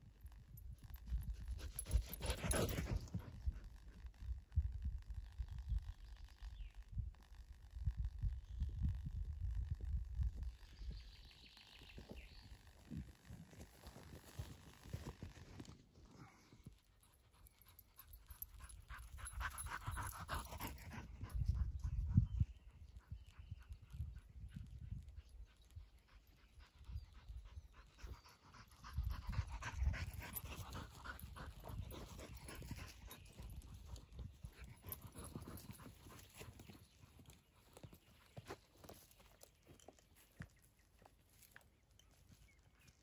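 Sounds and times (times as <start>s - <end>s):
dog panting: 1.8s - 3.3s, 17.2s - 21.6s, 26.0s - 36.8s.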